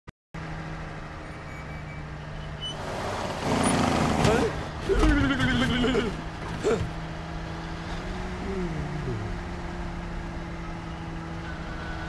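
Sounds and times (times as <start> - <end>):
truck engine and road noise: 0.4 - 12.0.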